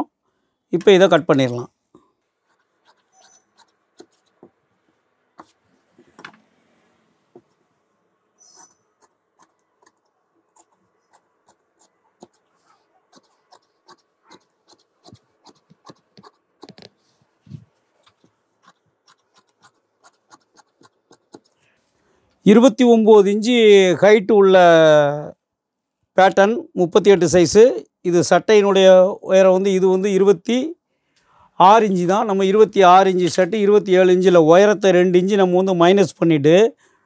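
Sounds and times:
shears snipping fabric: 2.4 - 4.6, 8.5 - 21.6.

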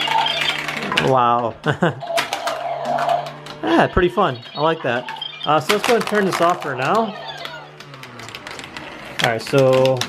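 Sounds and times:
motor humming and winding down: 0.0 - 10.0
marbles clicking on plastic tracks: 4.6 - 10.0.

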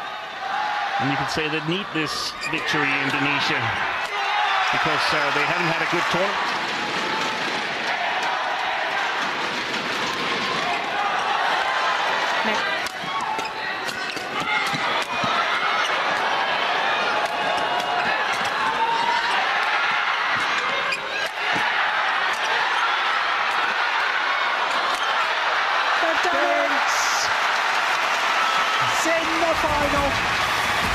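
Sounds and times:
crowd shouting: 0.0 - 30.9.

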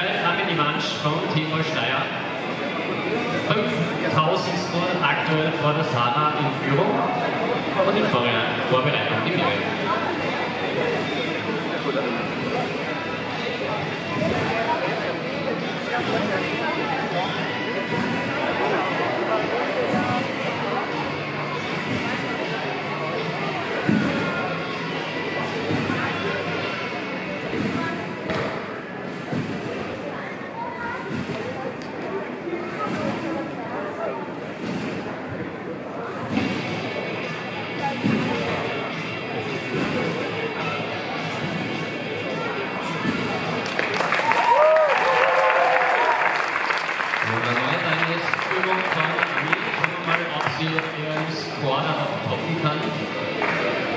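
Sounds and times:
background music: 0.0 - 29.6, 36.2 - 53.9
background chatter: 0.0 - 53.9.

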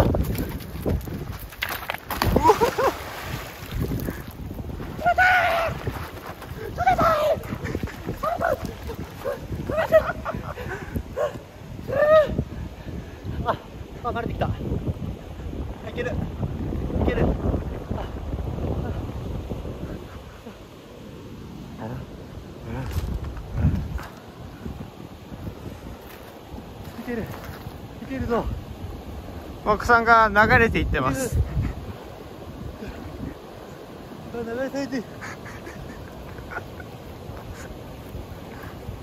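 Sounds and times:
wind buffeting microphone: 0.0 - 39.0
river water rushing: 2.0 - 9.8
person exclaiming: 5.0 - 5.9, 6.6 - 10.0, 11.9 - 12.4.

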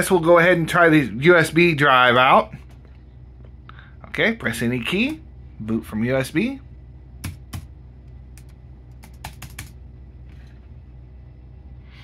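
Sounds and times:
low steady hum: 0.0 - 12.0
laptop keys clicking: 7.2 - 7.7, 8.4 - 9.8.

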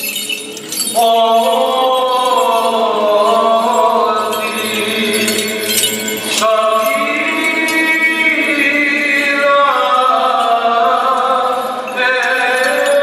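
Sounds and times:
small metal bells jingling: 0.0 - 13.0
men chanting: 0.9 - 13.0.

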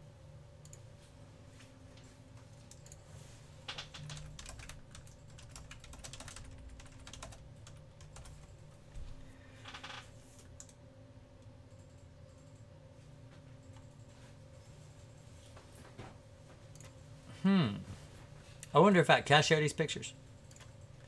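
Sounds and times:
low electrical hum: 0.0 - 21.0
computer keyboard typing: 2.7 - 3.0, 3.7 - 8.7, 20.4 - 21.0.

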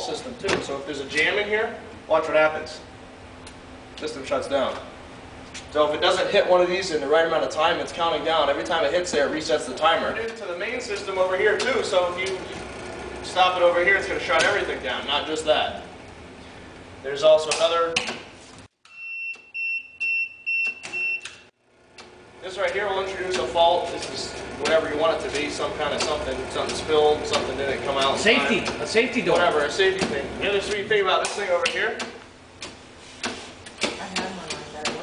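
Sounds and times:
electronic alarm buzzer beeping: 18.9 - 21.5
relays clicking: 20.8 - 35.0.

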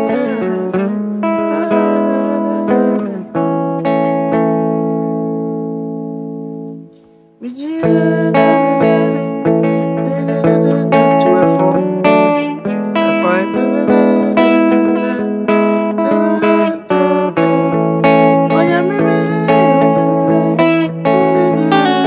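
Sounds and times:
electric guitar melody: 0.0 - 22.0.

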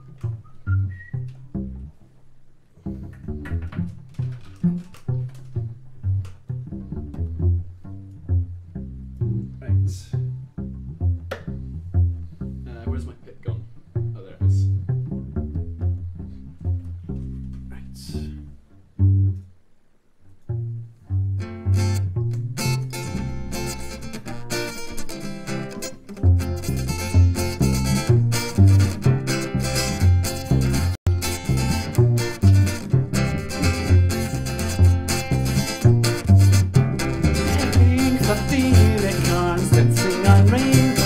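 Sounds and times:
acoustic guitar picked notes: 21.0 - 41.0
acoustic guitar strummed chords: 22.6 - 41.0.

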